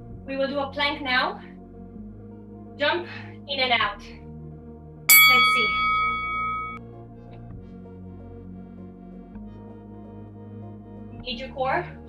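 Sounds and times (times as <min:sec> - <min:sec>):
soft ambient music: 0:00.0 - 0:12.0
bell chime: 0:05.1 - 0:06.8.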